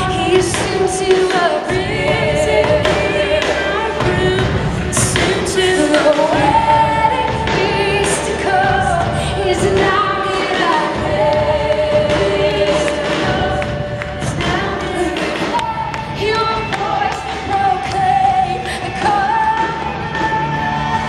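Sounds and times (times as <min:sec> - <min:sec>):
worship leaders singing hymn: 0:00.0 - 0:15.6
band playing: 0:00.0 - 0:21.0
congregation singing along: 0:00.0 - 0:21.0.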